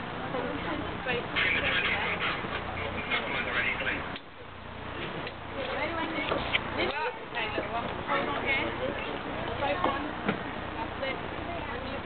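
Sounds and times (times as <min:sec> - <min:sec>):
high-pitched voices chattering: 0:00.3 - 0:04.1.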